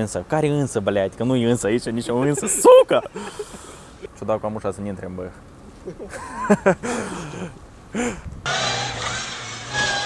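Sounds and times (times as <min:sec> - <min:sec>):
low steady hum: 0:00.0 - 0:09.9
laugh-like vocal sounds: 0:02.0 - 0:04.2, 0:05.8 - 0:08.2.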